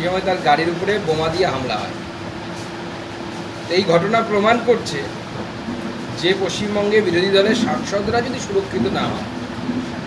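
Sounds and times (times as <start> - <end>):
room hiss and hum: 0.0 - 10.0
man speaking: 6.2 - 9.3.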